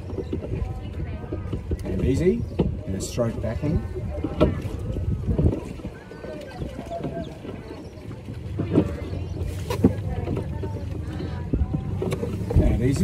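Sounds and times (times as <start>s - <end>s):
boat and oars knocking: 0.0s - 13.0s
faint voices: 0.0s - 13.0s.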